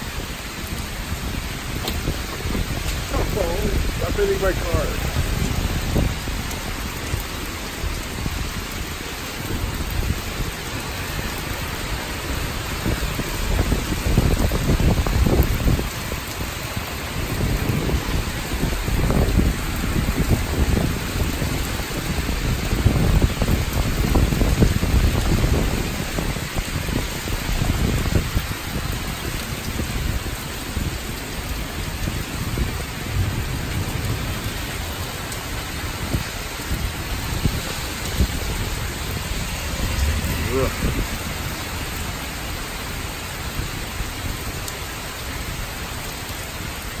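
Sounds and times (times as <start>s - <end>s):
heavy rain pouring: 0.0s - 47.0s
strong wind gusts: 0.0s - 47.0s.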